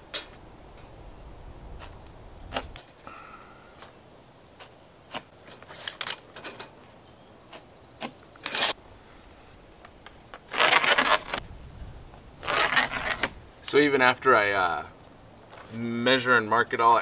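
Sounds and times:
metal straightedge scraping: 8.4 - 8.8, 12.4 - 13.4.

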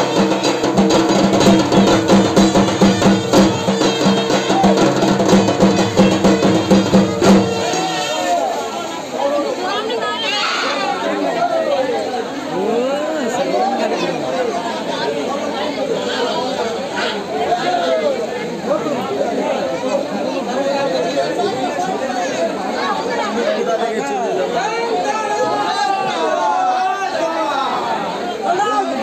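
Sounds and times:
crowd chatter: 0.0 - 29.0.

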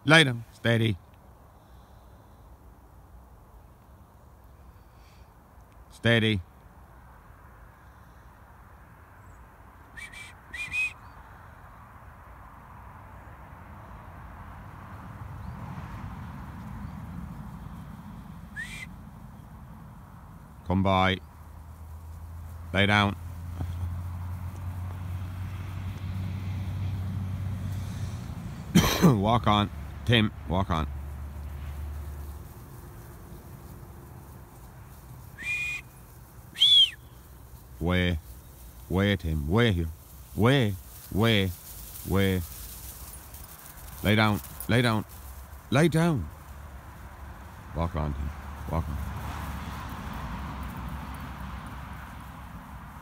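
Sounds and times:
faint outdoor background: 0.0 - 53.0
short whistles: 9.9 - 11.2, 18.5 - 19.0, 35.4 - 37.2.

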